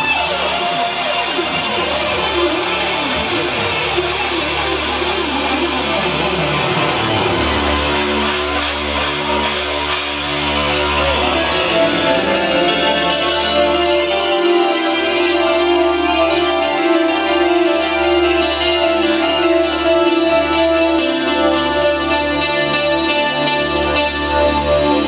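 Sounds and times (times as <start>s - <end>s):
bass: 0.0s - 25.0s
electric guitars: 0.0s - 25.0s
keyboard: 0.0s - 25.0s.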